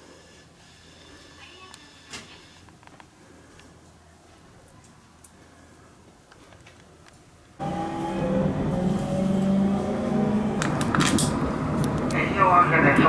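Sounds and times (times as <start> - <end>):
train running noise rising tones: 7.6 - 13.0.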